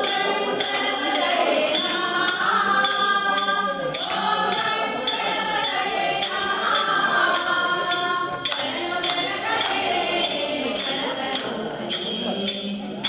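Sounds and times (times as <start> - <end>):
women singing in unison: 0.0 - 12.8
crisp percussion beat: 0.0 - 13.0.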